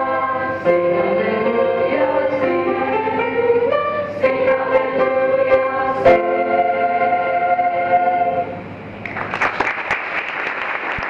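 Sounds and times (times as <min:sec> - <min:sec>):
choir singing held notes: 0:00.0 - 0:08.7.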